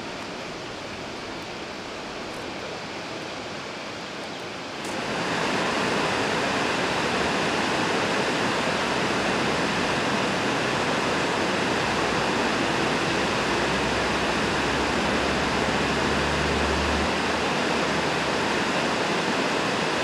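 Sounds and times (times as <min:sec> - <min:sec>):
steady rushing noise: 0:00.0 - 0:20.0.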